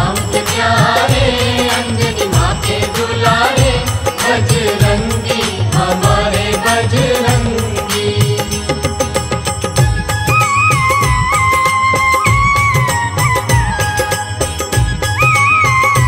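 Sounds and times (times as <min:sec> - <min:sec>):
person singing devotional song: 0:00.0 - 0:09.9
backing instruments: 0:00.0 - 0:16.0
steady drum beat: 0:00.0 - 0:16.0.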